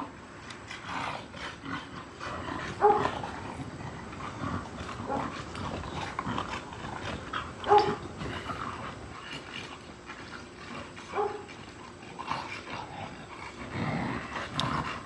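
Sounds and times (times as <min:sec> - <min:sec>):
dogs yelping: 0:02.0 - 0:15.0
dogs scuffling: 0:02.6 - 0:15.0.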